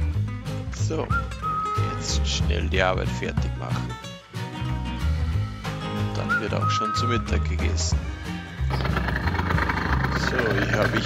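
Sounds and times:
background music: 0:00.0 - 0:11.0
small engine running: 0:08.6 - 0:11.0.

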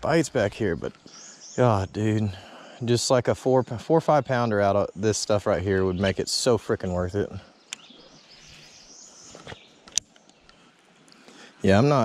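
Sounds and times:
steady high hiss: 0:00.0 - 0:09.6, 0:10.2 - 0:12.0.

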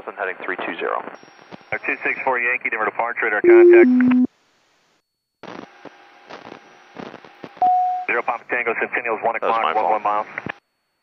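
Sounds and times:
loud beep tone: 0:03.5 - 0:04.3
radio crackles and clicks: 0:03.5 - 0:04.3.

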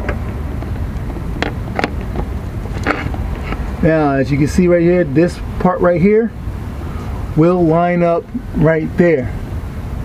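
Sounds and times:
sharp clicks and knocks: 0:00.0 - 0:03.7
steady low rumble: 0:00.0 - 0:10.0.

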